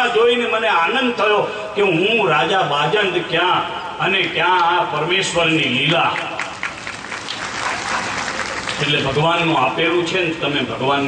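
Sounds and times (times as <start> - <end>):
audience applauding: 6.2 - 9.4.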